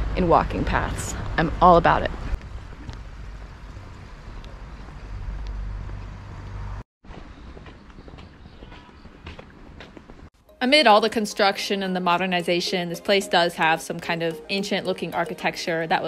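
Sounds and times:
faint outdoor ambience: 0:00.0 - 0:16.0.

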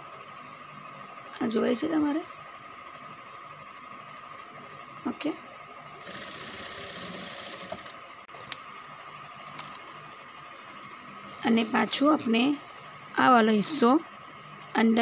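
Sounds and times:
sewing machine needle clatter: 0:06.0 - 0:08.0.

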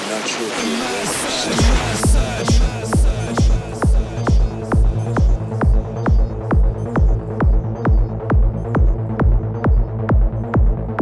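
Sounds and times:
deep bass drone: 0:01.1 - 0:11.0
kick drum beat: 0:01.6 - 0:11.0.

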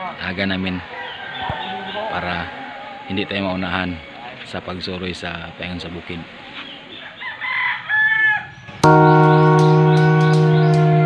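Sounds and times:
rooster crowing: 0:00.9 - 0:03.1, 0:07.2 - 0:08.5
held music chord: 0:08.8 - 0:11.0.

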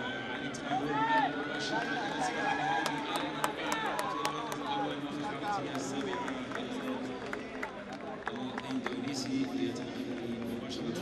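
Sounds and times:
crowd voices talking: 0:00.0 - 0:11.0.

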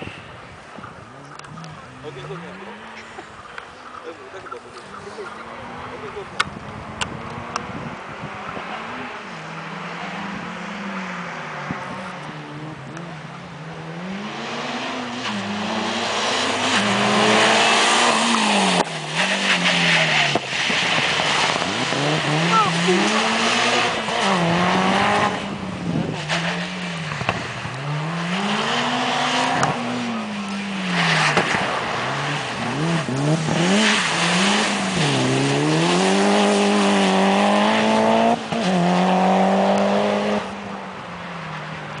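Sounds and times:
car engine revving: 0:00.7 - 0:42.0.

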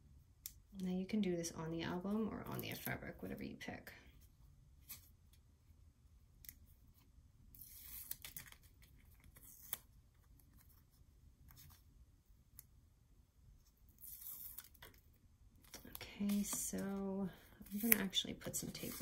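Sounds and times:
tape and ribbon rustles: 0:07.5 - 0:11.8, 0:13.6 - 0:19.0.

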